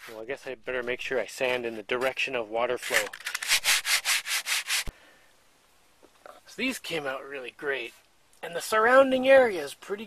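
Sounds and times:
hand sanding strokes: 3.0 - 4.9.

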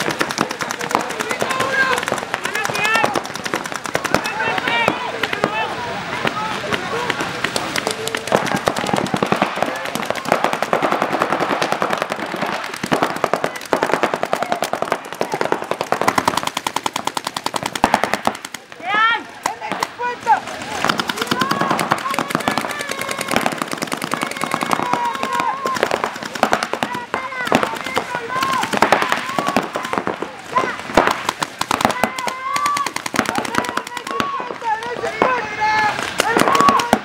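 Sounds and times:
paintball markers firing: 0.0 - 37.0
players shouting: 0.0 - 37.0.

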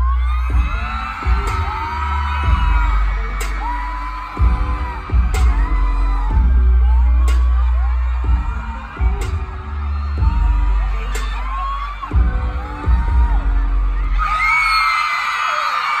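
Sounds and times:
music with deep bass: 0.0 - 14.7
crowd screaming: 0.0 - 16.0.

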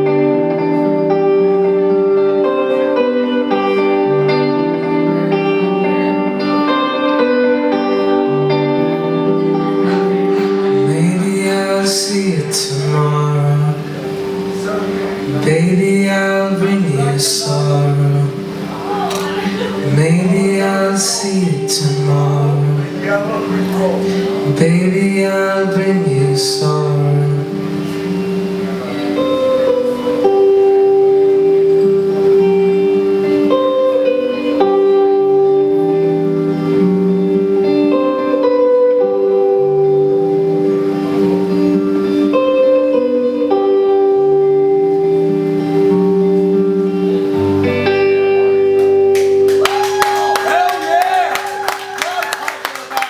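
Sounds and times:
electric guitar ringing notes: 0.0 - 53.0
audience clapping: 48.8 - 53.0.

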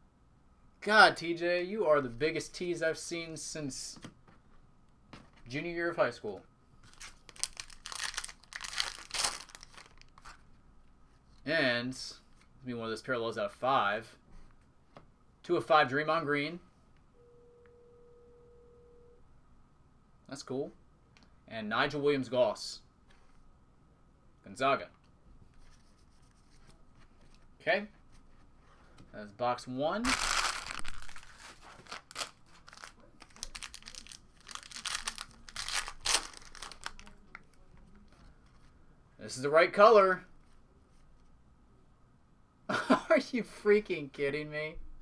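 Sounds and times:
foil wrapper tearing and crinkling: 6.8 - 10.3, 30.0 - 37.2
faint steady tone: 17.0 - 20.1.

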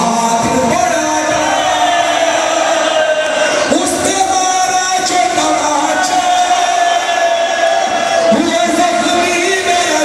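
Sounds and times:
crowd voices: 0.0 - 10.0.

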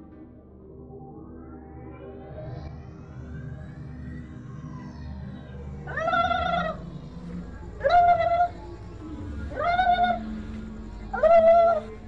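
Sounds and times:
low hum: 5.8 - 12.0.

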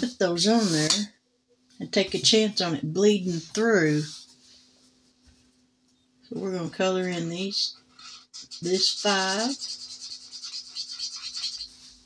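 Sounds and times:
marker scribbling on paper: 7.9 - 12.0.

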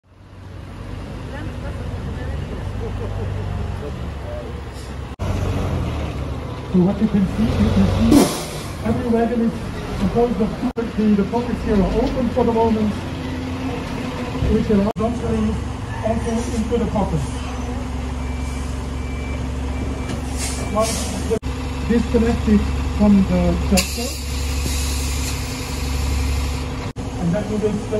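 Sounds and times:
hum of yard traffic: 0.0 - 27.9
tractor engine rumbling: 0.0 - 27.9
vehicle reversing alarm beeps: 17.4 - 21.4.

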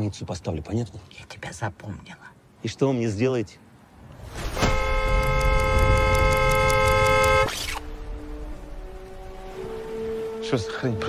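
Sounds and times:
car horn blast: 4.6 - 7.5.

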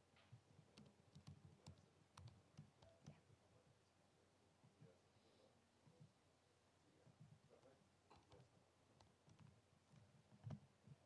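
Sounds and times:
keyboard typing: 0.7 - 3.2, 8.1 - 10.6.

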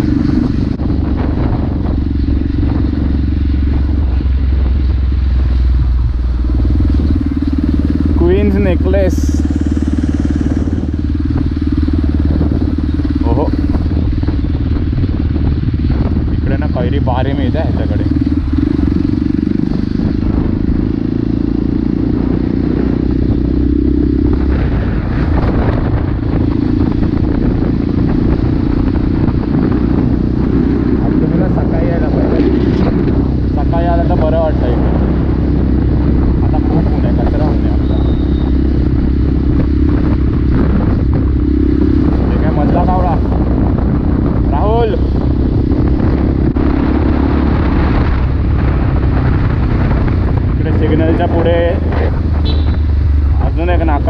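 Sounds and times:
motorcycle engine: 0.0 - 54.0
wind rumble: 0.0 - 54.0.

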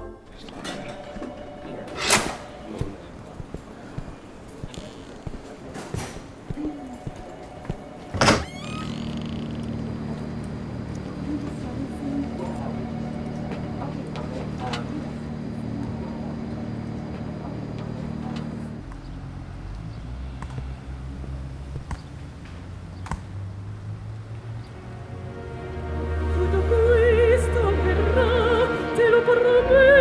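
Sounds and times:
steady low hum: 1.2 - 19.6
door pulled open: 1.9 - 2.6, 8.1 - 9.8
door squeak: 1.9 - 2.6, 4.7 - 5.3, 8.1 - 9.8.

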